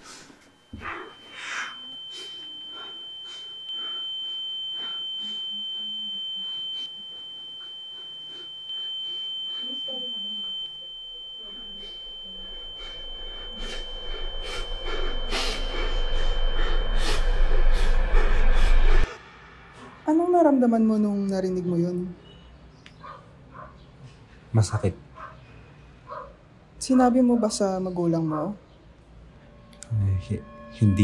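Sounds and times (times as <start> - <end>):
high-pitched electronic tone: 0.6 - 19.2, 29.4 - 31.0
low swelling sound: 10.8 - 19.2.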